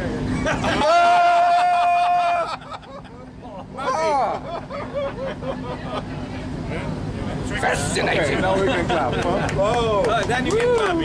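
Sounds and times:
men laughing: 0.3s - 6.2s, 8.4s - 10.0s
man whooping: 0.7s - 2.7s
crowd chatter: 3.2s - 11.0s.

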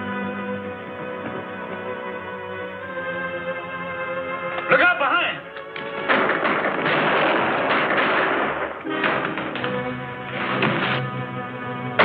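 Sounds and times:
dramatic film score: 0.0s - 12.0s
clatter and knocks: 5.6s - 11.1s.

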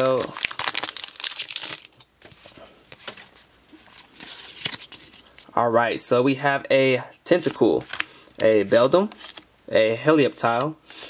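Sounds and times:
cards rustling from foil pack: 0.0s - 5.5s, 7.4s - 9.4s.

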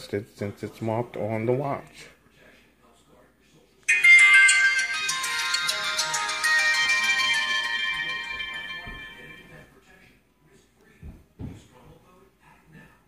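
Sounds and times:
smartwatch power-on jingle: 3.9s - 9.7s.

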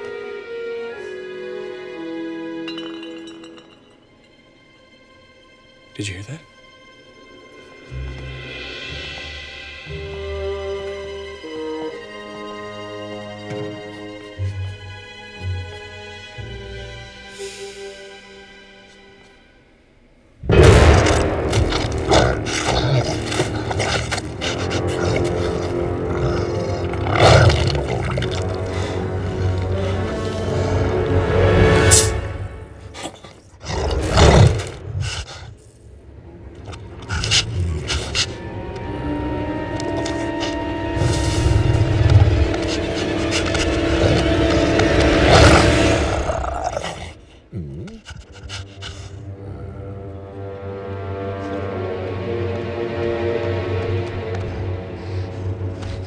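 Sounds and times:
film score music: 0.0s - 56.0s
monster roaring: 20.5s - 29.4s, 41.0s - 48.0s
werewolf snarling: 21.6s - 30.9s, 36.7s - 38.4s, 42.3s - 50.4s.

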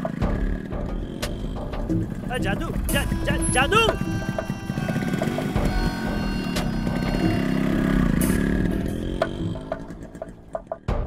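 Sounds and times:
motor engine revving: 0.0s - 11.0s.

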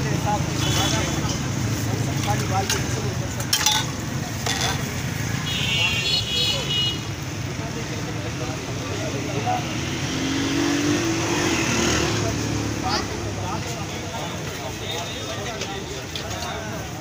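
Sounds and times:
vehicle engines running: 0.0s - 5.5s, 7.0s - 17.0s.

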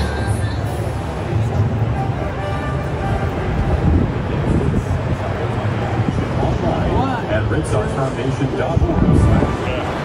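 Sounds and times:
low rumble of city noise: 0.0s - 10.0s.

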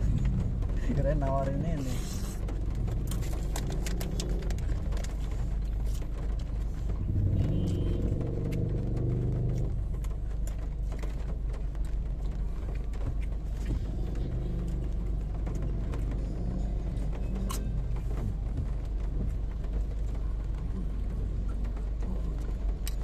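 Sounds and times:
low rumble inside a car: 0.0s - 23.0s.

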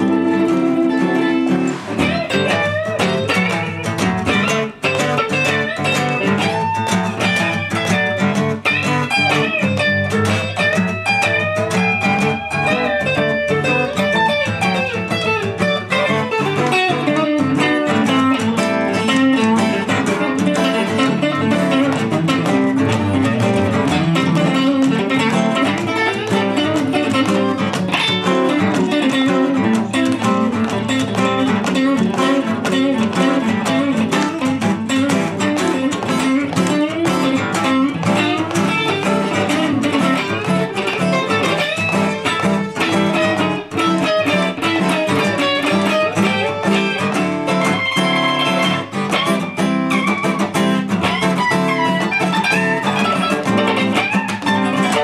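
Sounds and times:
electric guitar single-note lines: 0.0s - 55.0s
strummed acoustic guitar: 0.0s - 55.0s.

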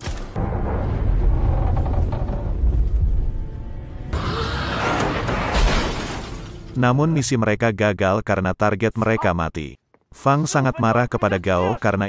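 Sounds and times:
knocks and clatter: 0.0s - 3.5s
deep rumble: 0.3s - 5.5s.

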